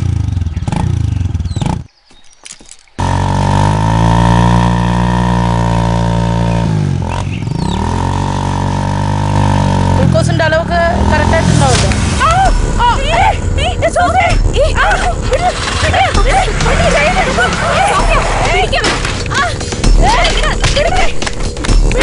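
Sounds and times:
motorcycle engine revving: 0:00.0 - 0:22.0
voices: 0:09.9 - 0:22.0.

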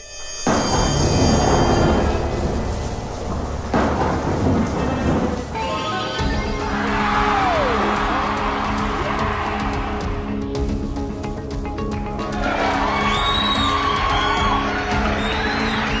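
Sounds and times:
background music with held notes: 0:00.0 - 0:16.0.

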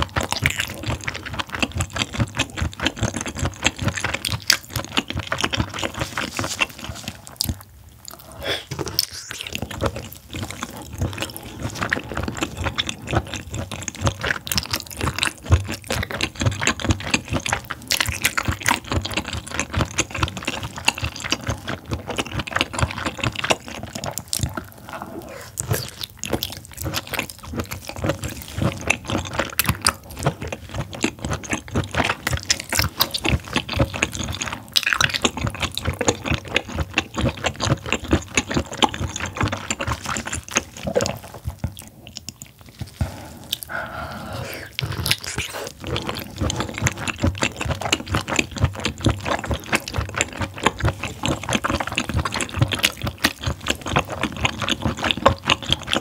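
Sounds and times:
close-miked chewing: 0:00.0 - 0:56.0.

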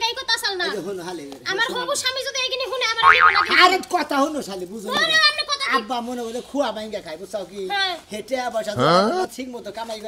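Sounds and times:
cartoon boing sound effect: 0:03.0 - 0:03.7.

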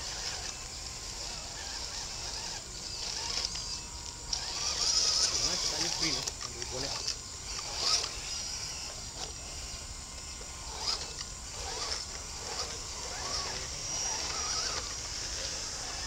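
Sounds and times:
electric motors whining: 0:00.0 - 0:16.0
high insect buzz: 0:00.0 - 0:16.0.

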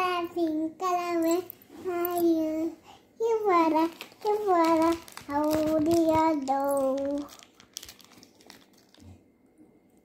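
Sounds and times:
candy wrappers crinkling: 0:03.6 - 0:09.2.

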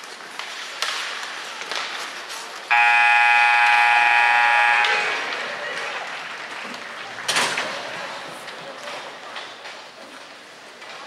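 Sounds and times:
faint arena voices: 0:00.0 - 0:11.0
scoreboard buzzer: 0:02.7 - 0:05.3.

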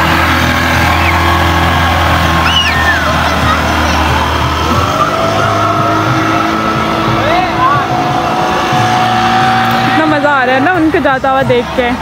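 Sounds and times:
boat wake churning water: 0:00.0 - 0:12.0
outboard engine running: 0:00.0 - 0:12.0.

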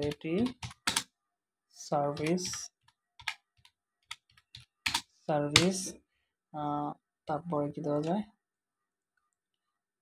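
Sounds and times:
computer keyboard typing: 0:00.0 - 0:01.1, 0:02.1 - 0:05.8.

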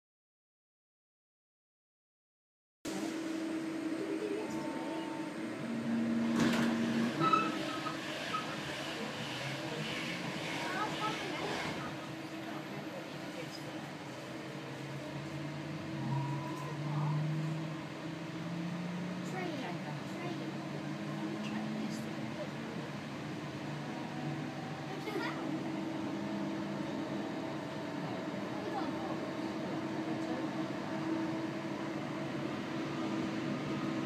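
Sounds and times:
train electrical hum: 0:02.9 - 0:34.0
traction motor rising tone: 0:15.3 - 0:19.4.

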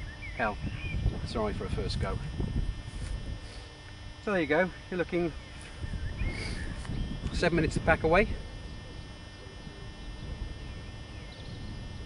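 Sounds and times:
faint bird chirps: 0:00.0 - 0:01.1, 0:05.3 - 0:07.2, 0:09.0 - 0:11.7
wind on microphone: 0:00.0 - 0:04.2, 0:04.8 - 0:12.0.

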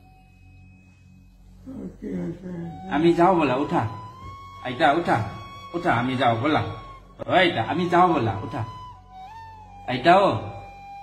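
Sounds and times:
elderly woman's wavering voice: 0:01.6 - 0:03.2.

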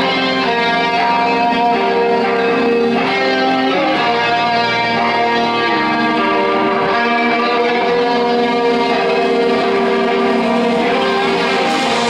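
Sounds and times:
electric guitar chords ringing: 0:00.0 - 0:12.0
rock band playing: 0:00.0 - 0:12.0.

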